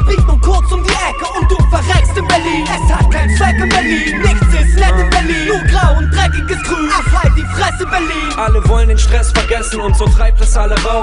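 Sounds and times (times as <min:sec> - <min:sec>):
deep bass: 0:00.0 - 0:10.8
rapping over a beat: 0:00.0 - 0:11.0.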